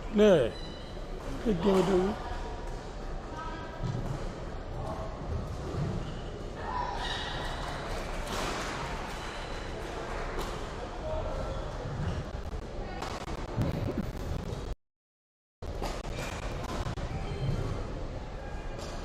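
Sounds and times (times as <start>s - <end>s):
voices in a sports hall: 0.0s - 14.7s, 15.6s - 19.0s.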